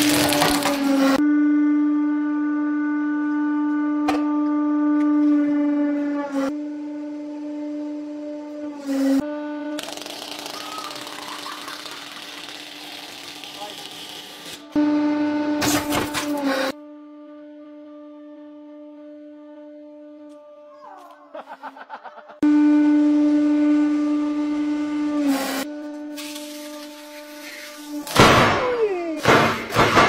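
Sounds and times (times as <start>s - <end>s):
hydraulic press droning: 9.8s - 14.8s, 26.9s - 30.0s.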